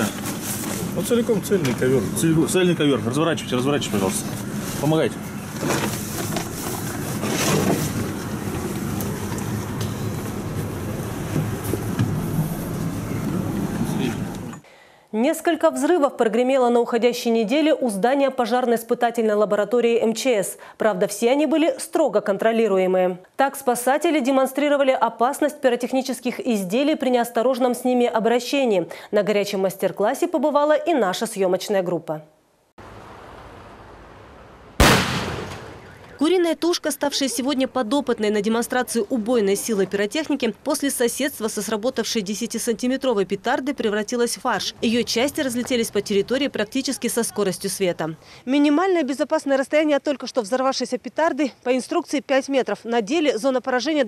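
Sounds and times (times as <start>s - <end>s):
vehicle engine hum: 0.0s - 14.6s, 32.8s - 34.8s
faint outdoor hiss: 0.0s - 54.0s
rug rustling and bumping: 5.4s - 13.4s
firecracker bang: 34.8s - 36.2s.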